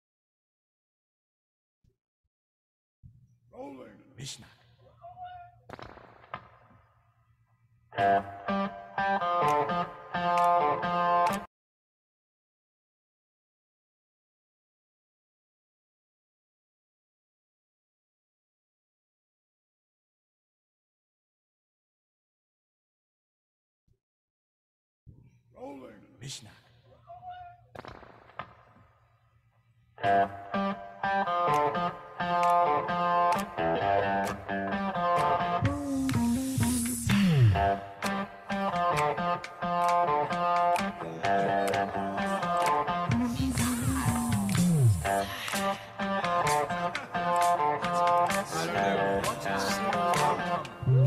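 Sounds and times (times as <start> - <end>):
short pitched voice-like sound: 35.7 - 37.8, 47.9 - 51.0.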